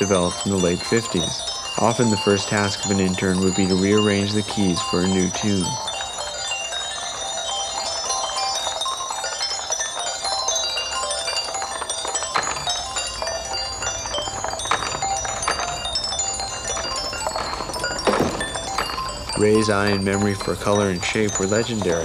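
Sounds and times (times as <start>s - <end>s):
tinkling chime-like tune: 0.0s - 22.0s.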